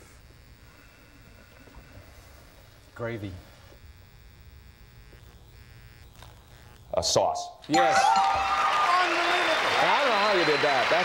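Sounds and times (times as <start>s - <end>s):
low hum with faint buzz: 0.0s - 7.7s.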